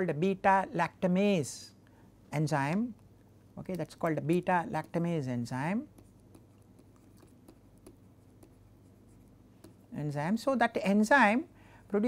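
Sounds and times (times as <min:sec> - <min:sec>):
low steady hum: 0:00.0 - 0:12.0
stylus tapping and scratching: 0:02.7 - 0:10.5.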